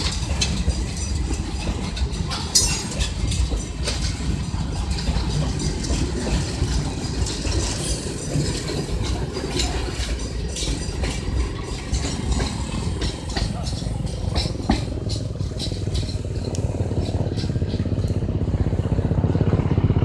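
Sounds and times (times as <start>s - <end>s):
train wheels rumbling on rails: 0.0s - 20.0s
wheels clacking over rail joints: 0.0s - 20.0s.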